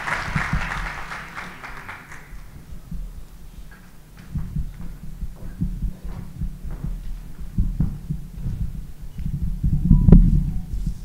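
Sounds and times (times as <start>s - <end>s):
steady low hum: 0.0s - 11.0s
microphone handling thumps: 2.3s - 11.0s.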